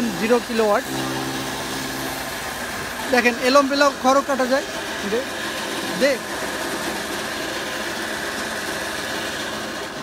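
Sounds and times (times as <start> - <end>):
electric motor hum: 0.0 - 10.0
straw chopping rushing noise: 0.0 - 10.0.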